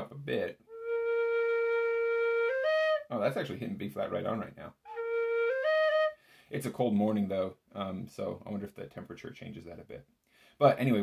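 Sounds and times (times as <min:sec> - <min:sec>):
tin whistle notes: 0:00.7 - 0:03.1, 0:04.9 - 0:06.2.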